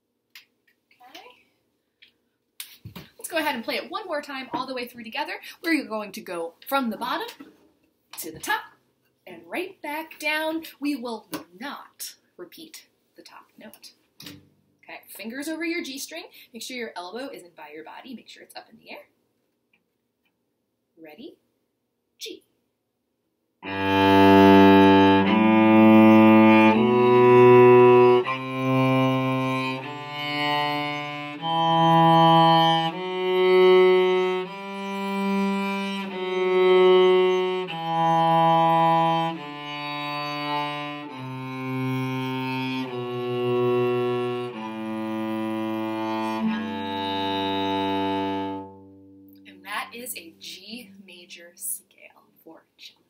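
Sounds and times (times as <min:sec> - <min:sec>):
cello bowing a scale: 0:23.6 - 0:49.6.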